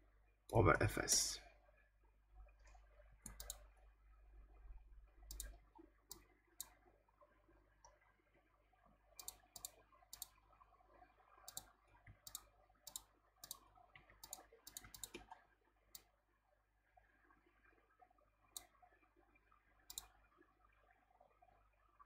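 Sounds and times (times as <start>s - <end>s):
computer mouse clicks: 3.2s - 3.6s, 5.3s - 6.8s, 9.2s - 10.4s, 11.5s - 13.6s, 14.2s - 15.4s, 19.9s - 20.1s.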